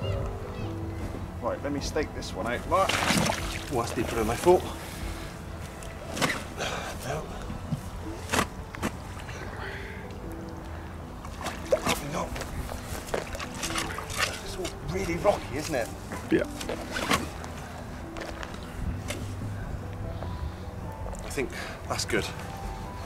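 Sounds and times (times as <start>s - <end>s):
quiet melody: 0.0s - 23.0s
water sloshing and splashing: 2.5s - 4.6s, 11.2s - 15.9s.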